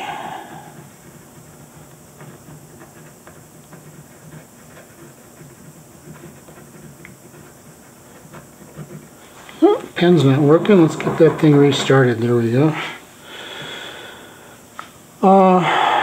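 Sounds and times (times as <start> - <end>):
ballpoint pen scratching on paper: 0.3 - 10.9.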